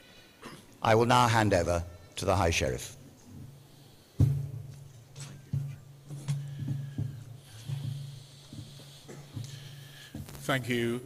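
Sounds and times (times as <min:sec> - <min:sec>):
loud thump: 0:04.2 - 0:04.7.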